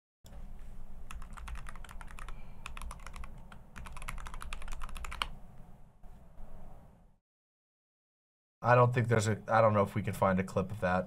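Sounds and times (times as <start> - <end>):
keyboard typing clicks: 1.1 - 5.3.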